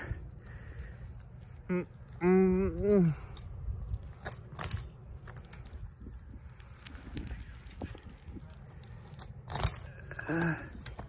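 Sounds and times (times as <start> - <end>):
bike rattling on concrete: 0.0 - 11.0
person humming: 1.7 - 3.3
metallic jangling: 3.8 - 5.8, 9.0 - 11.0.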